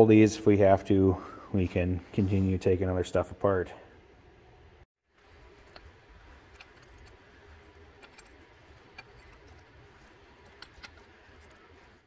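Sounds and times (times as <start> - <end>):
low background rumble: 3.7 - 12.0
wrench clicking on metal: 7.8 - 11.6.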